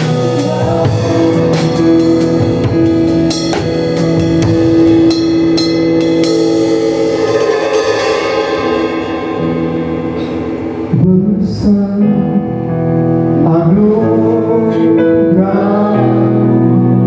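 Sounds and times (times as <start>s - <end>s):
drum kit playing: 0.0s - 13.6s
band holding long chords: 0.0s - 17.0s.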